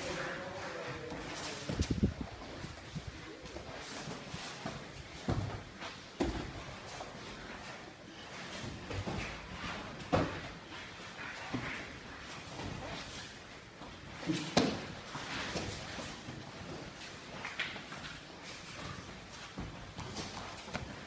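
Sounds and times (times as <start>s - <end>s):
bodies thudding on mat: 4.8s - 6.9s, 8.7s - 10.6s.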